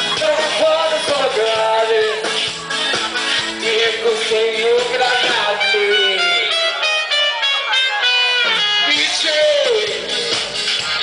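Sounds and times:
guitar: 0:00.0 - 0:11.0
live band music: 0:00.0 - 0:11.0.

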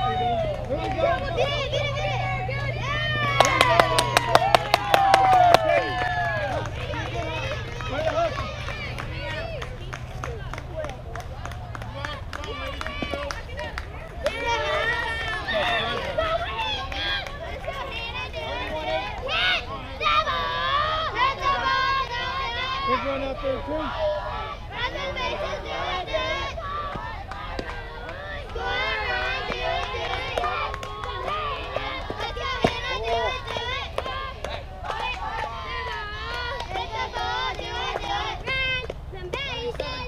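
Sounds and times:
crowd cheering and clapping: 0:00.0 - 0:40.0
crowd shouting and chatter: 0:00.0 - 0:40.0.

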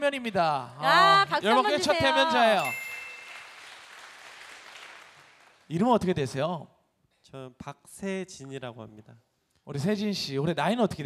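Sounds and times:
audience applauding: 0:01.0 - 0:05.8.

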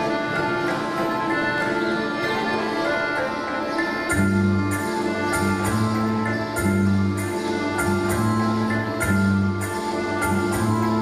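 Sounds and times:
instrumental dance music: 0:00.0 - 0:11.0.

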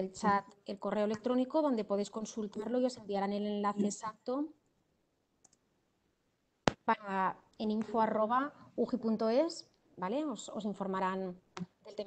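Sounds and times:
person speaking: 0:06.7 - 0:12.0.

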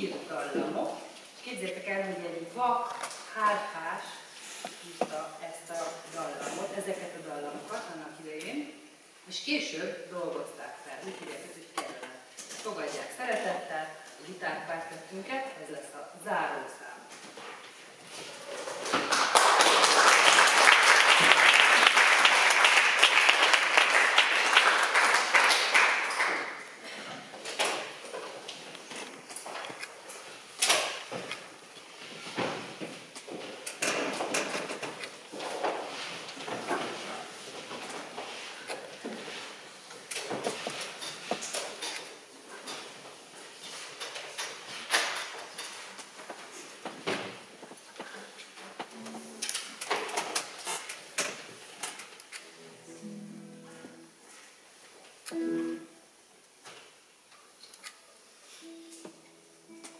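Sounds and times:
chairs and stands on wooden stage: 0:00.0 - 0:59.9
audience applauding: 0:18.6 - 0:26.8.

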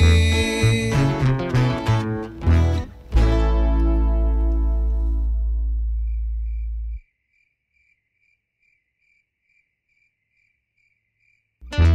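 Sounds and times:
music: 0:00.0 - 0:07.0, 0:11.6 - 0:11.9
faint cricket chirping: 0:05.2 - 0:11.6.

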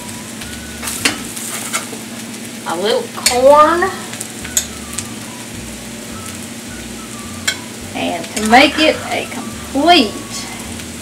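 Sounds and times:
potatoes sizzling in oil: 0:00.0 - 0:11.0.

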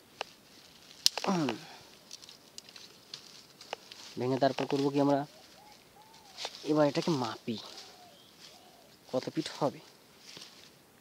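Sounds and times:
dry grass and twigs crackling: 0:00.0 - 0:11.0.

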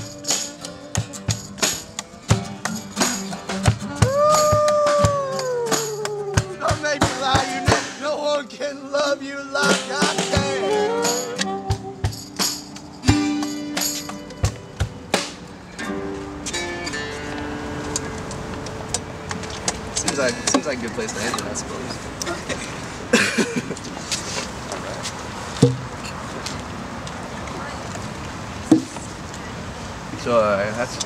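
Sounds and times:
saxophone melody: 0:00.0 - 0:04.4, 0:09.4 - 0:13.8
sharp drum hits: 0:00.0 - 0:08.1, 0:25.6 - 0:25.9
acoustic guitars strumming: 0:00.0 - 0:23.7.

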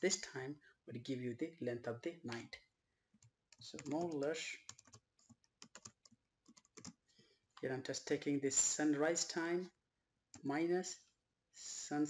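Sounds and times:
keyboard typing clicks: 0:03.8 - 0:07.0.

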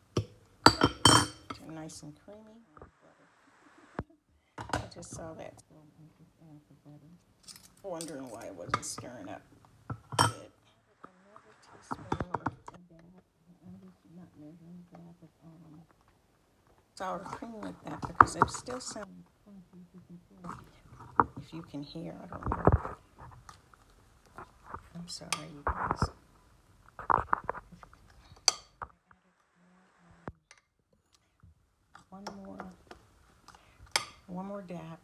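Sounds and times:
faint low humming: 0:00.0 - 0:35.0.

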